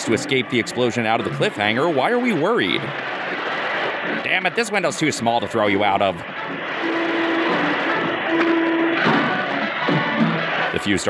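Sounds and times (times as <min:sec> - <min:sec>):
orchestral score held notes: 0:06.7 - 0:10.3.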